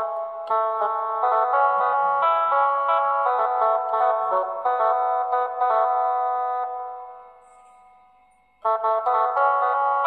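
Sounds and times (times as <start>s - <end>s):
electronic keyboard notes: 0.0s - 10.0s.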